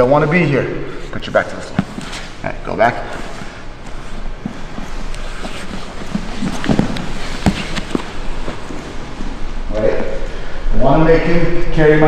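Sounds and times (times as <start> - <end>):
bodies scuffing on foam mats: 3.3 - 9.3.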